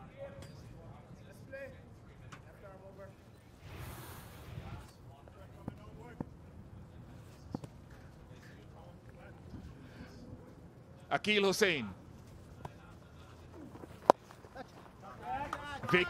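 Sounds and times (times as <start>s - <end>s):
graphics whoosh: 3.6s - 4.9s.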